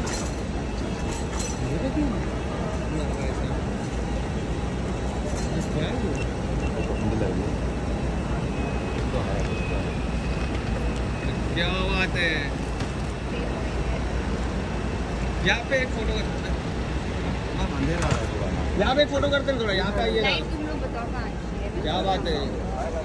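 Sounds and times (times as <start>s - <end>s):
traffic rumble: 0.0s - 23.0s
people talking: 0.8s - 12.6s, 13.2s - 16.8s, 17.4s - 23.0s.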